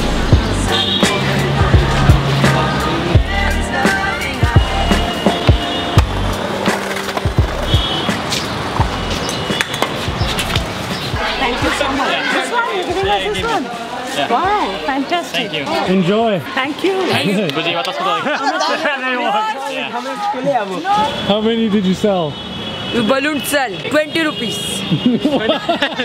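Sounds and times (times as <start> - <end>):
music with a beat: 0.0 - 11.8
people's voices: 0.0 - 26.0
skateboard wheels rolling on pavement: 3.8 - 15.8
skateboard clacking on ground: 6.4 - 10.7.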